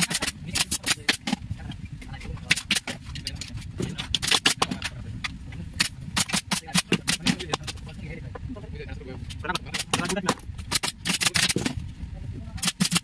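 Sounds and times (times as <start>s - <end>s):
plastic chair parts clicking: 0.0s - 7.9s, 9.3s - 11.8s, 12.6s - 13.0s
steady low rumble: 0.0s - 13.0s.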